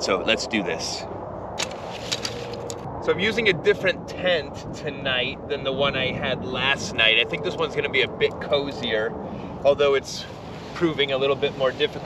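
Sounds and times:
low background rumble: 0.0 - 12.0.

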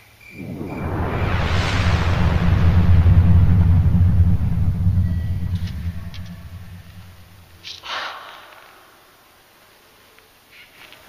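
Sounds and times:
deep low rumble: 0.3 - 7.8.

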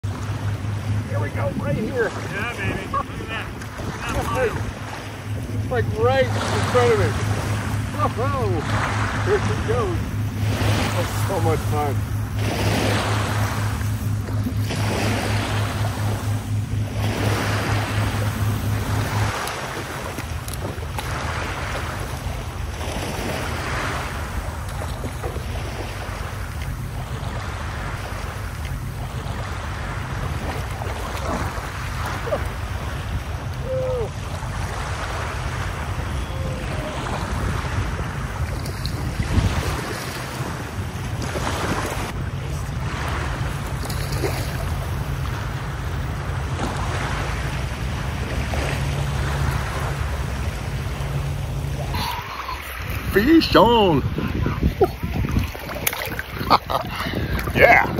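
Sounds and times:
low steady hum: 0.0 - 57.9
small waves washing: 0.0 - 57.9
wind buffeting microphone: 0.0 - 57.9.

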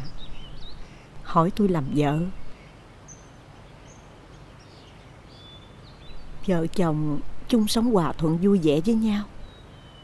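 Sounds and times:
faint bird chirps: 0.0 - 10.0
woman speaking: 1.2 - 2.4, 6.4 - 9.3.

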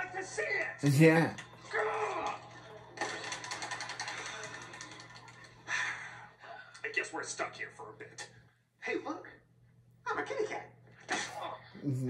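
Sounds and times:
computer keyboard typing: 3.0 - 5.5.

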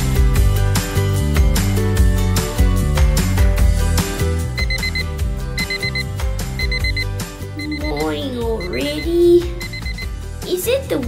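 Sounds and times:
background music with steady beat: 0.0 - 11.0
digital alarm clock beeping: 4.5 - 10.2.

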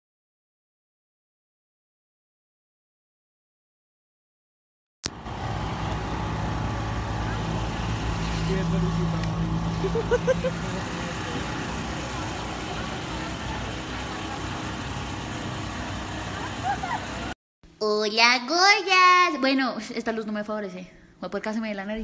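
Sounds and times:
street traffic passing: 5.1 - 17.4
people talking: 7.1 - 15.4, 16.3 - 22.0.

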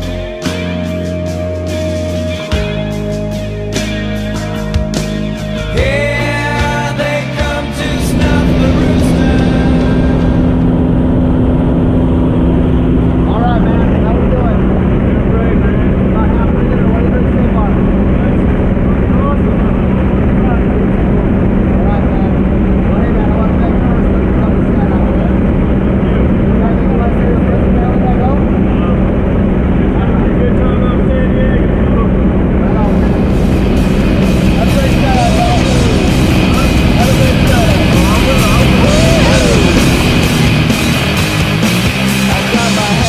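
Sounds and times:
propeller airplane engine from inside: 0.0 - 43.0
faint voices: 7.8 - 40.9.

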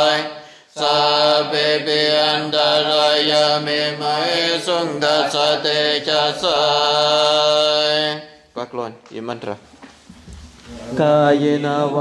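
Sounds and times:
person chanting melodically: 0.0 - 8.3.

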